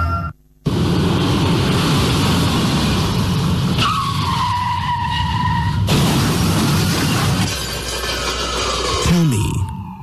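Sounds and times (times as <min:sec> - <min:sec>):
car engine and road rumble: 0:00.0 - 0:09.3
tyres screeching in a skid: 0:03.7 - 0:10.0.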